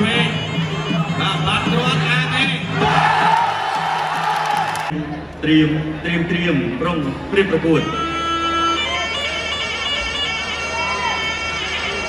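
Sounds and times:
crowd shouting and whooping: 2.7 - 4.9, 10.7 - 12.0.

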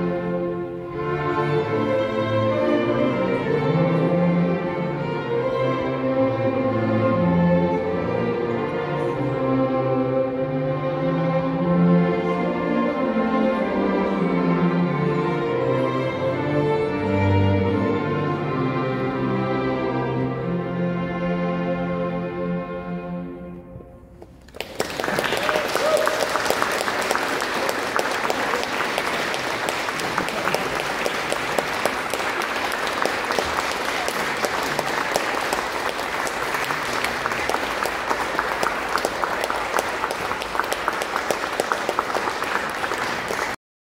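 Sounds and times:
audience applauding: 24.4 - 43.6.

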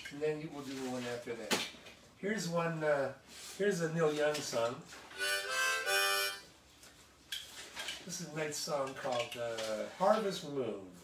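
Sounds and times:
harmonica chord: 5.2 - 6.5.

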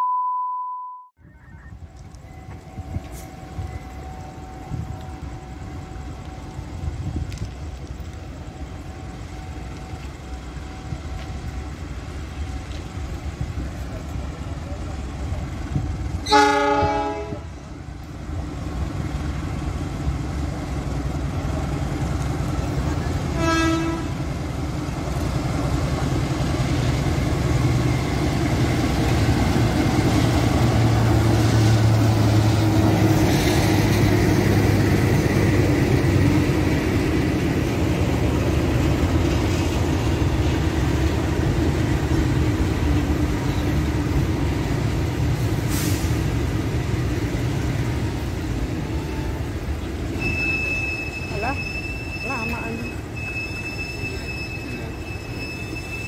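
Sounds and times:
freight train rumbling past: 1.7 - 56.0
locomotive horn blasts: 16.2 - 17.5, 23.3 - 24.2
diesel engine passing: 24.2 - 50.2.

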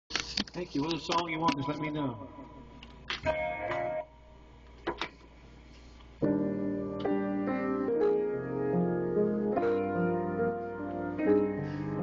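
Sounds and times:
faint room hum: 0.1 - 12.0.

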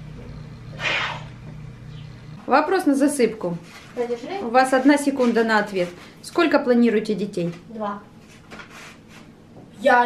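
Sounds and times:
low steady hum: 0.0 - 8.4.

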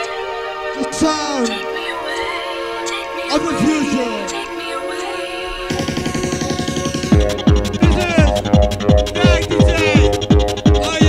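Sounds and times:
held synth chords: 0.0 - 11.0
pounding kick drum: 5.7 - 11.0.

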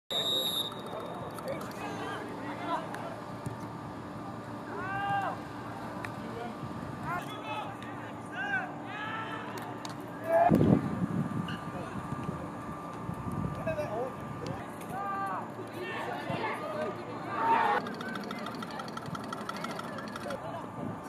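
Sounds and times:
referee's whistle: 0.1 - 1.1
players shouting: 4.2 - 6.0, 7.1 - 10.5, 14.7 - 18.8.

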